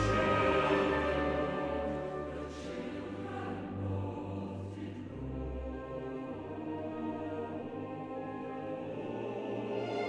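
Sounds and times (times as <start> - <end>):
choir singing softly: 0.0 - 10.0
sustained orchestral chords: 0.0 - 10.0.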